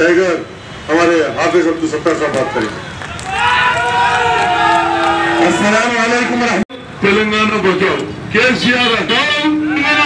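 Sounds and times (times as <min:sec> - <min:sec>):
man calling through a loudspeaker: 0:00.0 - 0:02.8, 0:05.4 - 0:10.0.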